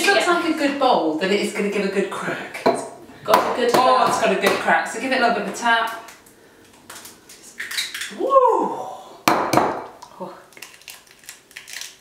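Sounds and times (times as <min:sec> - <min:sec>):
person exclaiming: 0:08.1 - 0:09.2.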